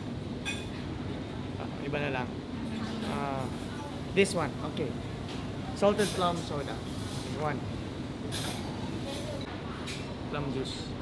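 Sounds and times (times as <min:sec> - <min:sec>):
restaurant din: 0:00.0 - 0:11.0.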